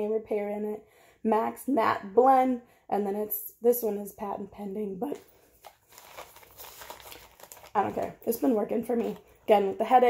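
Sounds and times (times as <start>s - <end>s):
foil sachet crinkling: 5.2s - 10.0s.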